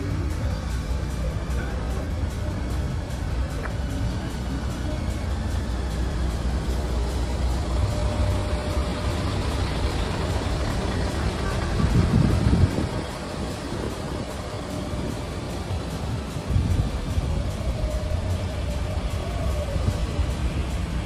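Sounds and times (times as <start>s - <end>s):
diesel trucks idling: 0.0s - 21.0s
music playing: 0.0s - 21.0s.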